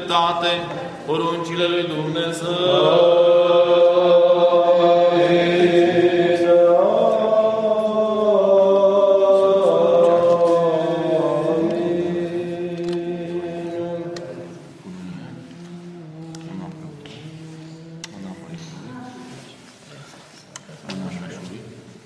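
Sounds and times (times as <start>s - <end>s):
voices chanting: 1.1s - 18.5s.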